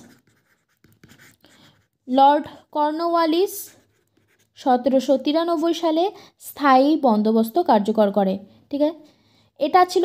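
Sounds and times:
stylus scratching on tablet screen: 0:00.0 - 0:02.2, 0:03.0 - 0:05.1.

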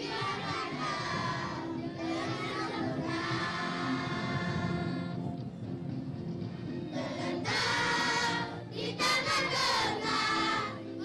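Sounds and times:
children singing in chorus: 0:07.0 - 0:10.8.

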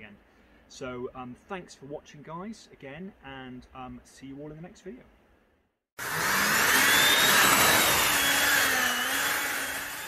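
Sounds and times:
rocket motors rushing whine: 0:06.0 - 0:10.0.

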